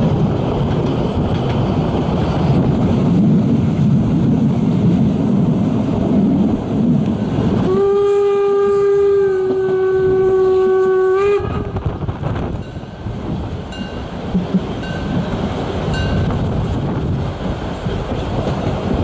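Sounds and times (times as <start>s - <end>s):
wind noise on microphone: 0.0s - 19.0s
steam locomotive whistle: 7.6s - 11.9s.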